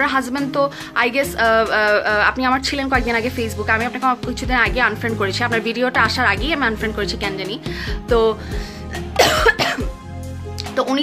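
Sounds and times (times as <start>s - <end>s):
woman speaking: 0.0s - 8.4s, 10.6s - 11.0s
background music: 0.0s - 11.0s
woman coughing: 9.0s - 10.0s.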